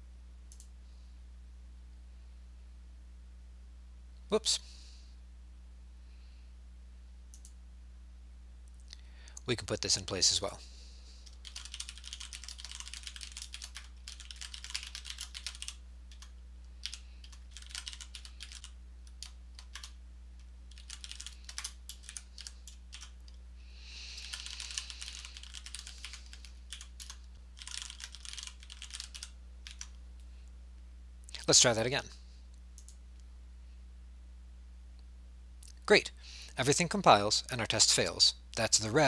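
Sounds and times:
typing on computer keyboard: 11.3s - 20.0s, 20.7s - 23.2s, 24.2s - 29.9s.

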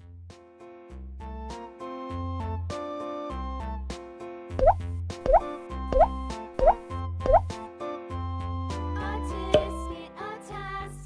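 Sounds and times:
rising bloop sound effects: 4.6s - 7.6s
cheerful children's music: 5.3s - 11.0s.

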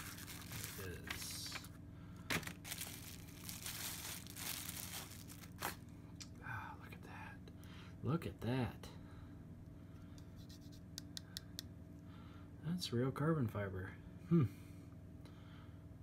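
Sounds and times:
packaging crinkling and tearing: 0.0s - 1.7s, 2.3s - 5.9s.

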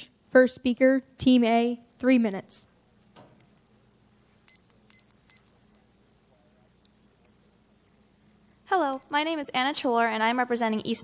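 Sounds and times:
short high electronic beeps: 4.5s - 5.5s.

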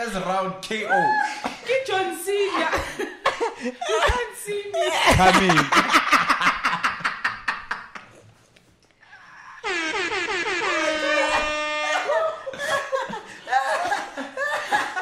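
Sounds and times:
men laughing hard: 2.6s - 8.2s, 11.0s - 15.0s.

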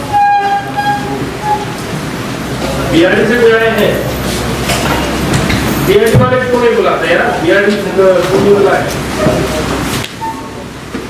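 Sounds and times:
high-pitched horn-like tone: 0.0s - 1.8s.

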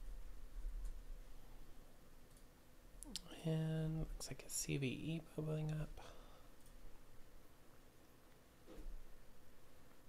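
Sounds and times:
computer mouse clicks: 2.3s - 3.3s.

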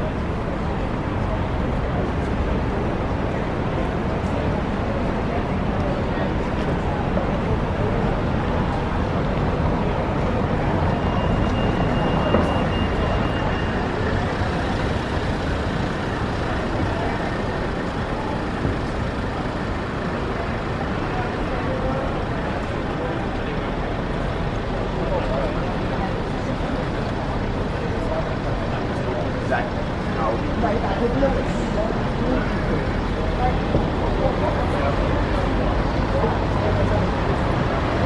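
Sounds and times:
traffic noise: 0.0s - 38.0s
voices of passing crowds: 0.0s - 38.0s.

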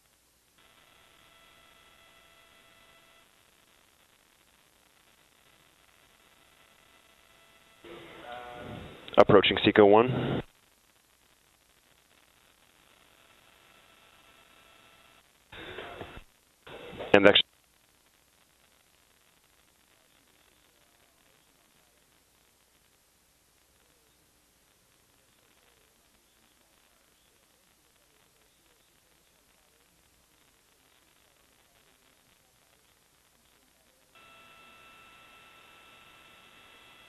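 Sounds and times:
high electrical hum: 0.0s - 22.1s, 24.7s - 37.0s
faint radio hiss: 0.0s - 37.0s
voice over radio: 7.9s - 10.4s, 16.7s - 17.4s.

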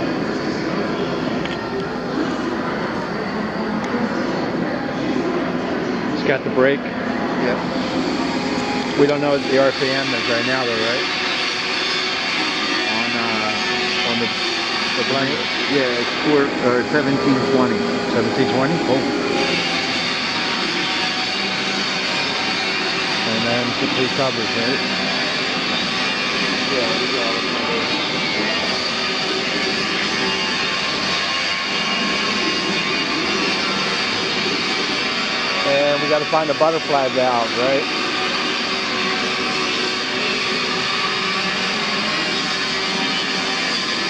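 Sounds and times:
machinery whirring drone: 0.0s - 44.0s.

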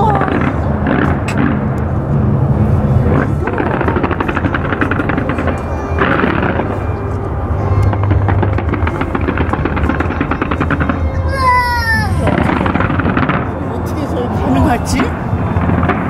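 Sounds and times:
fireworks crackling and popping: 0.0s - 1.8s, 3.0s - 7.0s, 7.8s - 16.0s
music: 2.8s - 16.0s.

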